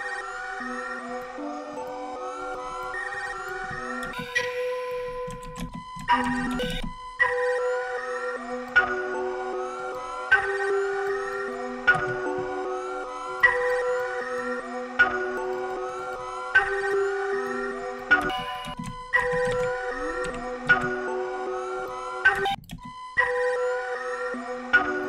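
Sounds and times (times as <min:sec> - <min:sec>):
looping synth melody: 0:00.0 - 0:25.0.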